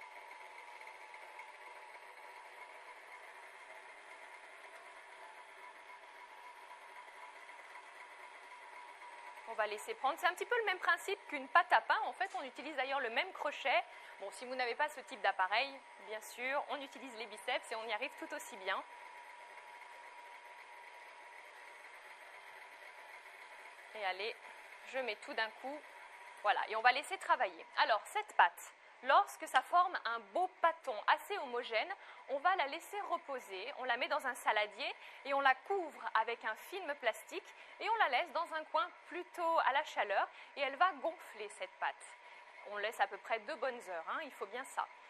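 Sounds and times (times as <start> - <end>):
stand mixer motor whining: 0.0 - 45.0.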